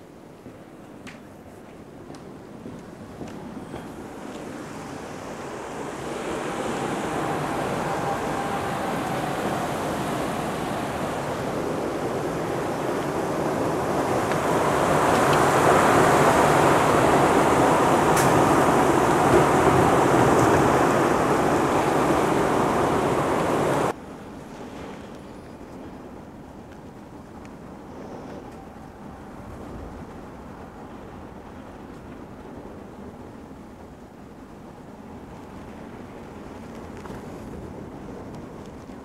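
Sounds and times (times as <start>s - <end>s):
storm wind with driving rain: 1.8s - 39.0s.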